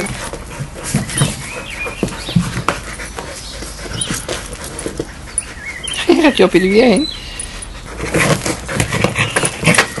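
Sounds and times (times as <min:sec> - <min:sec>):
dogs scuffing and knocking: 0:00.0 - 0:05.3, 0:07.9 - 0:10.0
dogs grunting: 0:00.0 - 0:06.1, 0:07.2 - 0:10.0.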